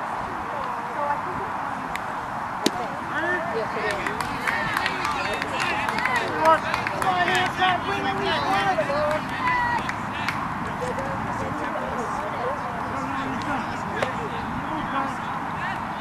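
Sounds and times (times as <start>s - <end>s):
voices calling out and talking: 0.0s - 16.0s.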